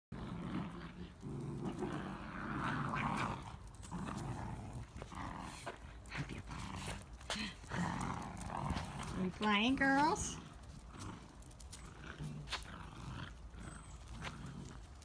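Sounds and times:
small dogs growling in play: 0:00.1 - 0:09.5, 0:10.2 - 0:15.0.

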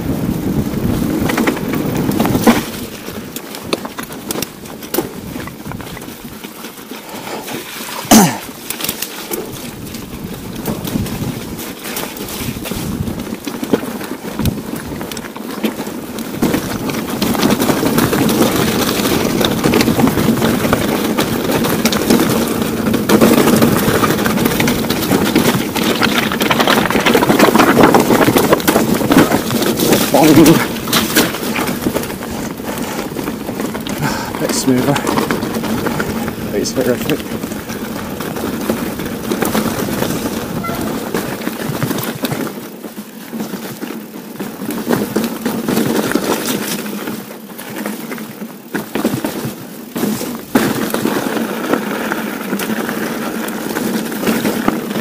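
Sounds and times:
bike rattling and knocking: 0:00.0 - 0:55.0
bike tyres on rock and gravel: 0:00.0 - 0:55.0.

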